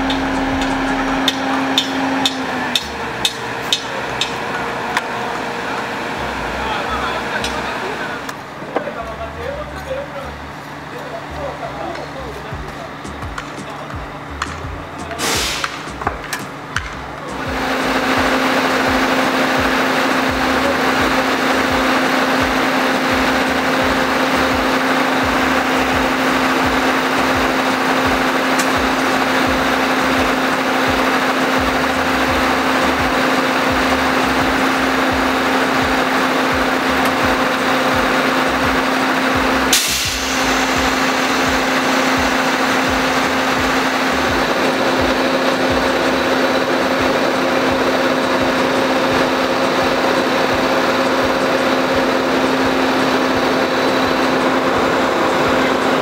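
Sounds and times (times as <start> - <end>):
diesel engine drone: 0.0 - 56.0.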